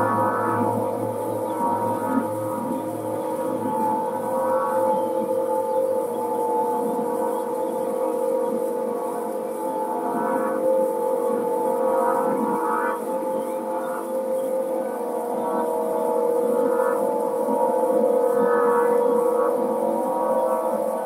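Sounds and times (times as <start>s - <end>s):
wind harp drone: 0.0s - 21.0s.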